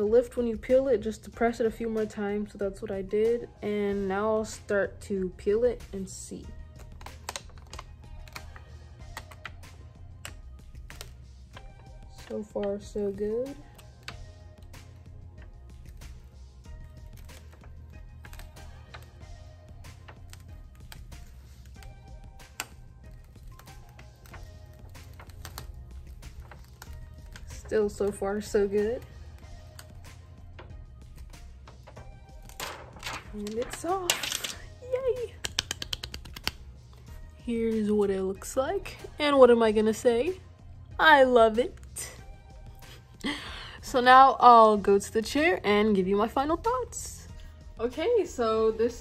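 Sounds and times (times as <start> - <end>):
background music: 0.0 - 49.0
film peeling with crackling clicks: 6.6 - 37.0.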